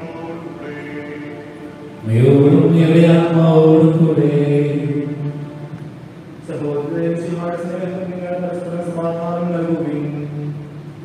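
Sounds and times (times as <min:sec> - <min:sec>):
man chanting: 0:00.0 - 0:05.8, 0:06.4 - 0:10.7.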